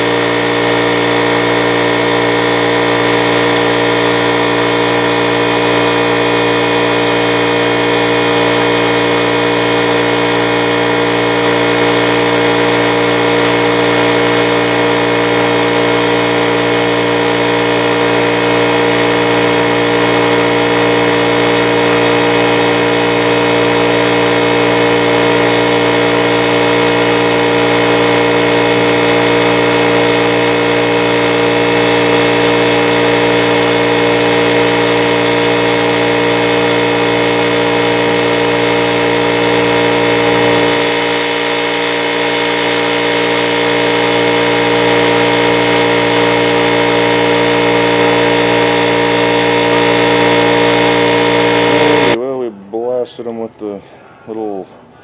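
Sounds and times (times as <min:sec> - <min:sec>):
power sander running: 0:00.0 - 0:52.2.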